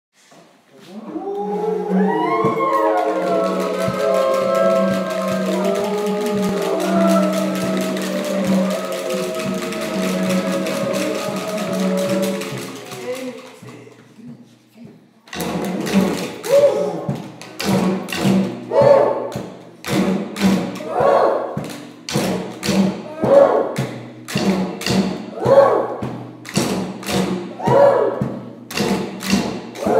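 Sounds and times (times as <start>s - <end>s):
didgeridoo drone: 1.3s - 12.8s
rhythmic thud: 1.9s - 14.5s, 15.3s - 29.9s.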